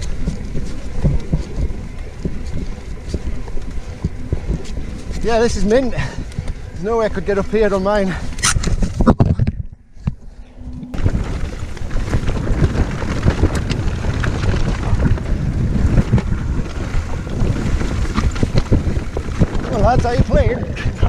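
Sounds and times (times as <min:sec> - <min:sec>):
mountain bike rattling on dirt trail: 0:00.0 - 0:09.1, 0:10.9 - 0:21.0
wind on microphone: 0:00.0 - 0:21.0.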